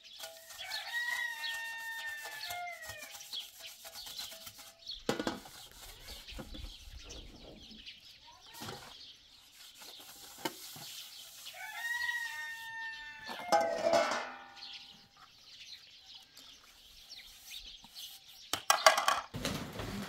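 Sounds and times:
rooster crowing: 0.6 - 3.1, 11.6 - 14.2
metal dishes clinking: 13.3 - 14.9.

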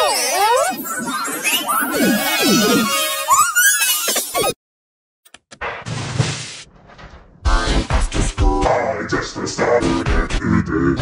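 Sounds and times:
loud music: 7.5 - 10.4
distorted music and voice: 7.5 - 11.0.

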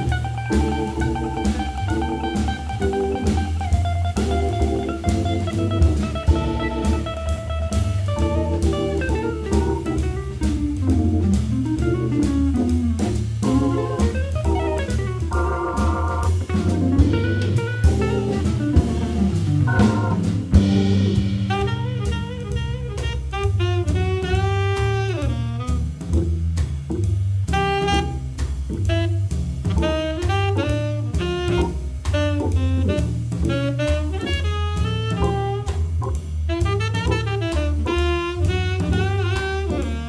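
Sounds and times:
saxophone: 0.0 - 3.4, 13.5 - 18.9, 21.4 - 26.2, 27.5 - 40.0
organ: 0.0 - 7.1, 7.8 - 10.2, 10.8 - 21.2
electric guitar: 0.0 - 10.3
drum kit: 0.0 - 40.0.

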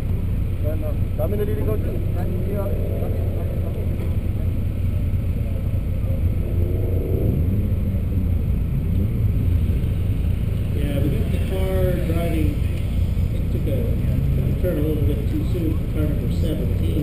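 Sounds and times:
car engine idling: 0.0 - 17.0
voices murmuring: 0.5 - 9.2.

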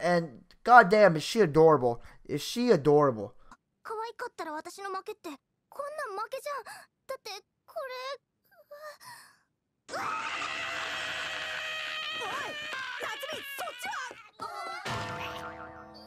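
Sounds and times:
girl's voice: 3.8 - 9.2
cartoon sound effects: 14.8 - 16.0
comic music: 14.8 - 16.0.

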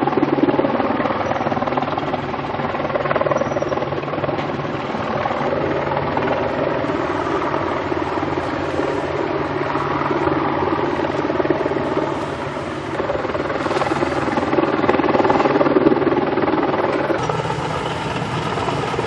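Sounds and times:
heavy diesel engines droning: 1.0 - 15.8, 16.7 - 19.0.

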